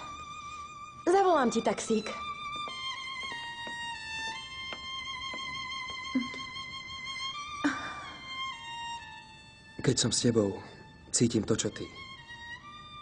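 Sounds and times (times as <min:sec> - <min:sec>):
slow violin melody: 0:00.0 - 0:13.0.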